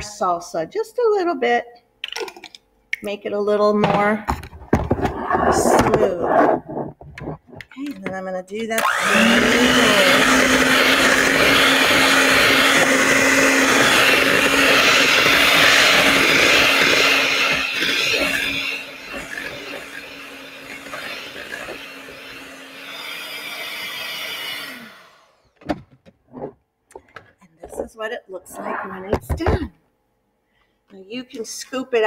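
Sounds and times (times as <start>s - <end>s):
electric hand mixer running: 8.8s - 25.6s.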